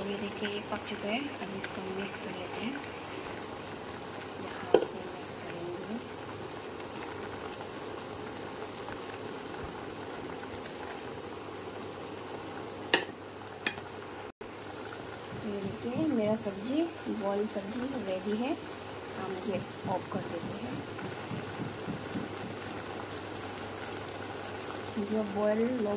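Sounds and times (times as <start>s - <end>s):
pot boiling and bubbling: 0.0s - 25.9s
masher knocking against pot: 19.8s - 22.8s.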